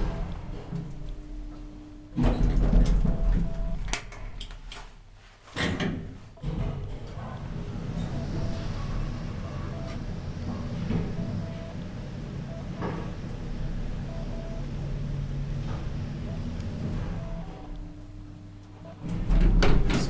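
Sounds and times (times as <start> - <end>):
elevator car running: 0.0 - 4.5, 6.4 - 20.0
elevator doors thudding and clattering: 0.0 - 4.8, 5.6 - 20.0.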